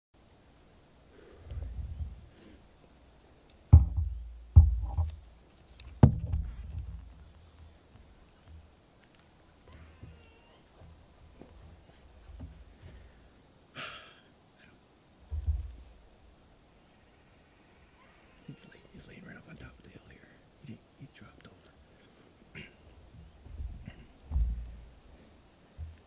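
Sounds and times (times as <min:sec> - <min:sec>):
sharp thumps with deep boom: 0:03.7 - 0:05.2, 0:06.0 - 0:07.2, 0:23.5 - 0:24.9.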